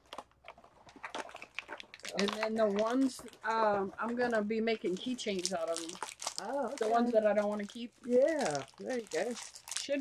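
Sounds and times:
faint clicks and rustles of packaging: 0:00.0 - 0:10.0.

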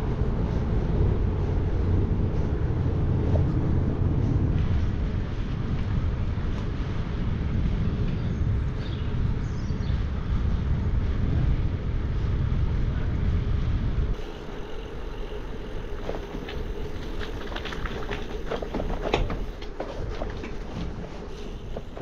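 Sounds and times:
bicycle road rush: 0:00.0 - 0:22.0
wind buffeting microphone: 0:00.0 - 0:22.0.

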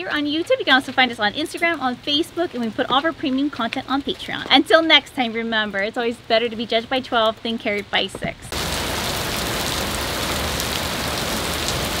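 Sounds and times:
heavy rain on pavement: 0:08.5 - 0:12.0.

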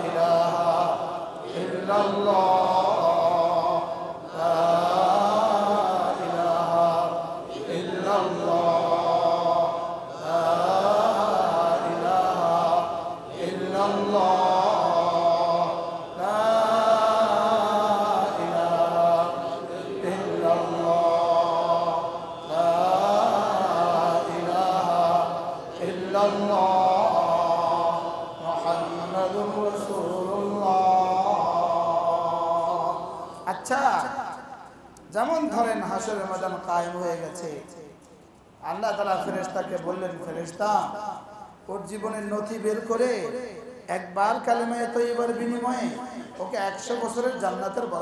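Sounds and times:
man chanting: 0:00.0 - 0:34.5, 0:35.1 - 0:37.8, 0:38.6 - 0:48.0.

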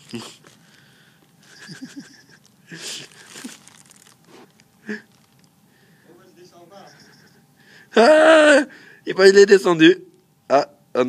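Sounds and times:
rustling handling noise: 0:00.0 - 0:07.4.

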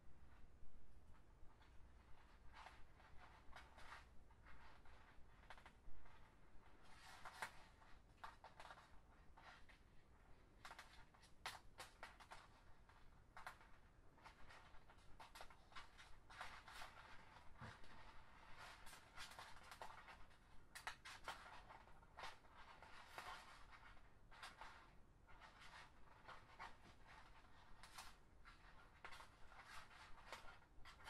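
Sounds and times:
plastic strings rustling and clicking: 0:01.6 - 0:31.0.

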